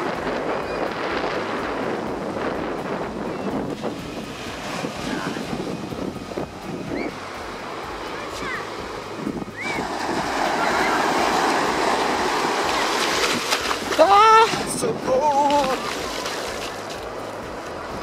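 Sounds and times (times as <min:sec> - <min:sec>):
surf breaking on beach: 0:00.0 - 0:18.0
wind buffeting microphone: 0:00.0 - 0:18.0.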